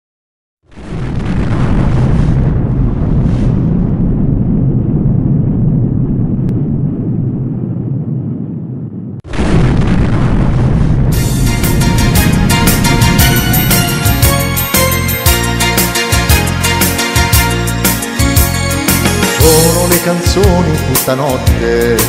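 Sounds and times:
deep rumbling explosion: 0.6 - 20.8
music with a beat: 12.2 - 21.6.

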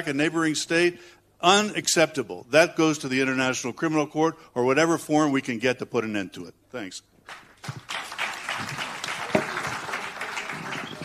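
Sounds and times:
audience applauding: 7.3 - 11.0.

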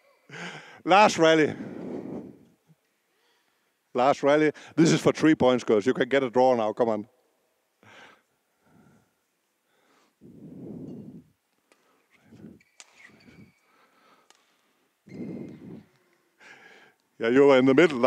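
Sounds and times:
man breathing into microphone: 7.8 - 11.3.

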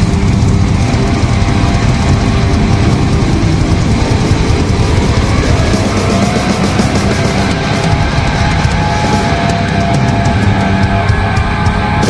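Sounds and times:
live hard rock band playing: 0.0 - 12.0.

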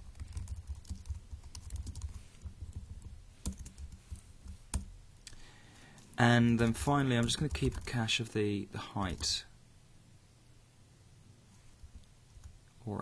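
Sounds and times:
typing on computer keyboard: 0.0 - 4.9, 7.2 - 8.0.

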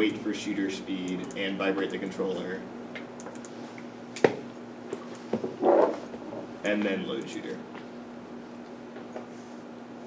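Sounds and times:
low room hum: 0.0 - 10.0
keyboard and mouse clicks: 3.2 - 3.5.

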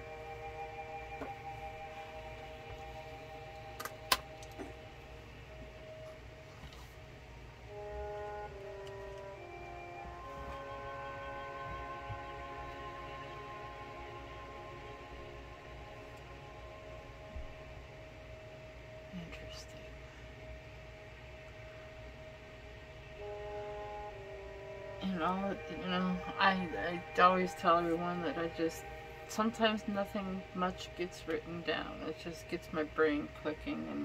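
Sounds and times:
slow held chords music: 0.0 - 34.0.

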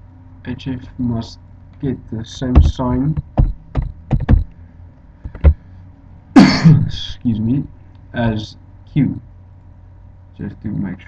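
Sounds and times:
computer keyboard taps: 2.6 - 4.5
man coughing loudly: 6.4 - 7.0.

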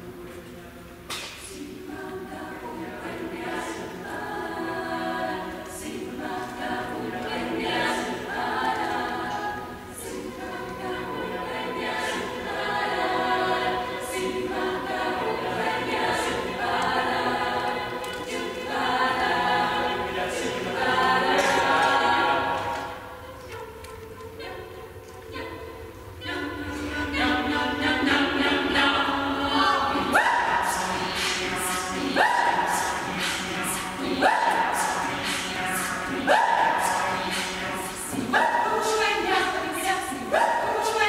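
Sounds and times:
choir singing a cappella: 0.0 - 41.0.

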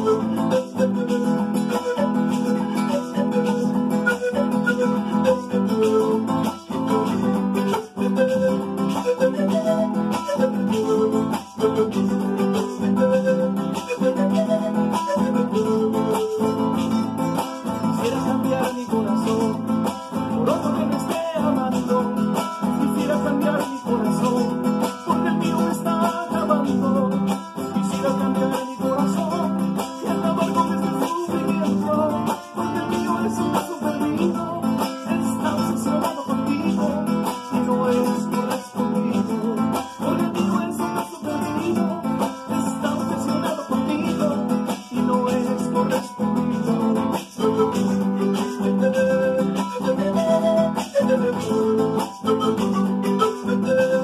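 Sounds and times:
acoustic guitar strumming: 0.0 - 54.0
man singing: 0.0 - 54.0
panpipe melody: 0.0 - 54.0.

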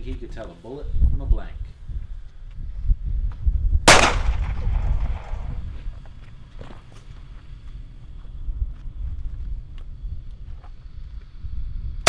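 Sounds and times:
low rumble: 2.0 - 6.1
gunshot: 3.9 - 5.6.

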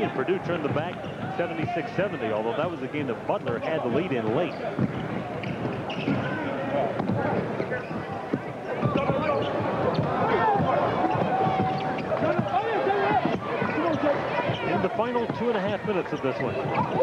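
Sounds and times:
voices in arena: 0.0 - 17.0
sneakers squeaking: 3.9 - 17.0.

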